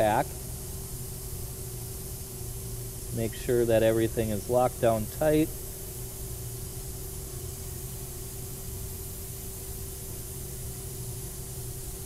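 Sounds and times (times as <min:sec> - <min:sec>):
machine hum with mid-pitched tone: 0:00.0 - 0:12.0.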